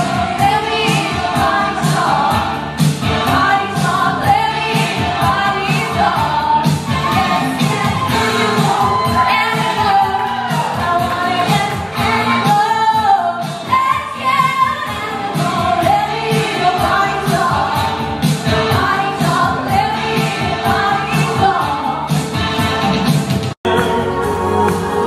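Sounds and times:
woman singing into a microphone: 0.0s - 2.4s, 3.3s - 17.9s, 18.7s - 22.1s
backing music with steady beat: 0.0s - 25.0s.

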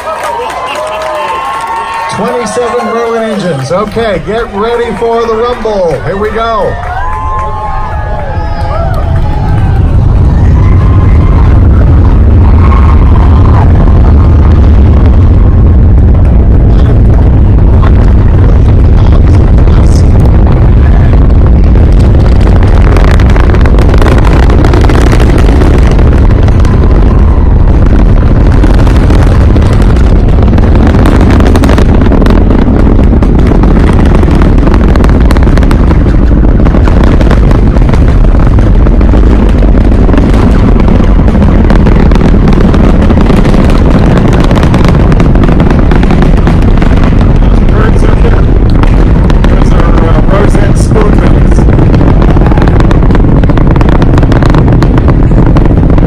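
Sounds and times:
rocket engines rumbling with crackle: 0.0s - 56.0s.

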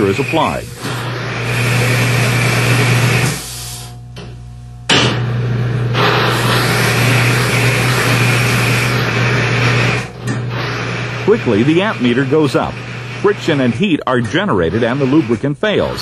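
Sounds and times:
harsh metal grinding: 0.0s - 3.7s, 5.0s - 16.0s
electric motor humming: 0.0s - 16.0s.

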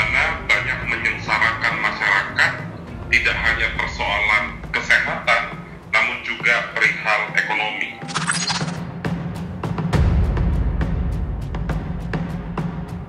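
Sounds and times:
person speaking: 0.0s - 8.8s
quiet background music: 0.0s - 13.0s.

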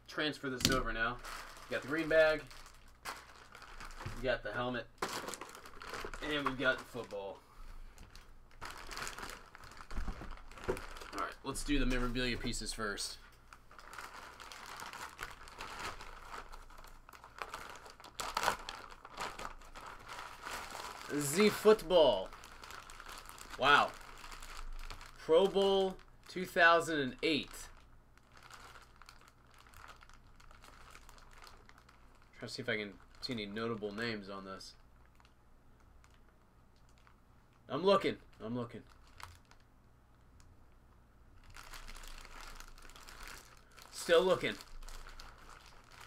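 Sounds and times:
plastic bags crinkling: 0.6s - 35.4s, 36.0s - 39.7s, 41.4s - 46.0s.

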